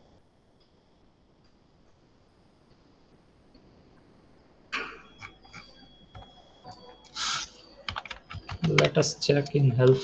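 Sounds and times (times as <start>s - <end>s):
short hiss: 7.2s - 7.5s
person speaking: 7.2s - 10.0s.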